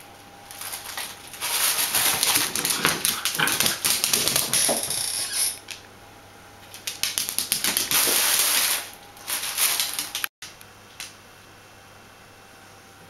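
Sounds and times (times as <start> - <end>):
puppy claws scrabbling on tile: 0.5 - 5.8, 6.6 - 10.3
puppy vocal sounds: 1.9 - 5.3.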